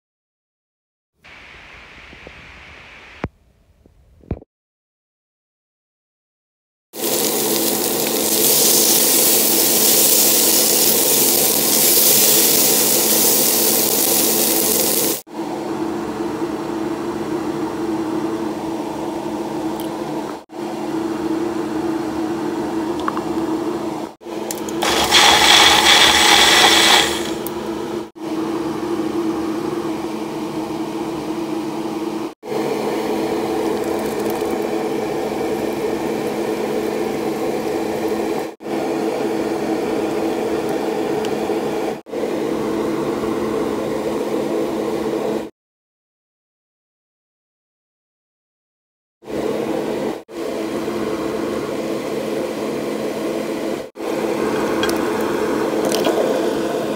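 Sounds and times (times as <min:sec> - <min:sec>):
blender running: 0:07.0 - 0:15.2, 0:24.3 - 0:30.7, 0:32.5 - 0:44.1, 0:54.0 - 0:56.9
green beans sizzling in a pot: 0:07.0 - 0:15.2, 0:24.8 - 0:27.4
wooden spoon stirring: 0:24.8 - 0:27.3.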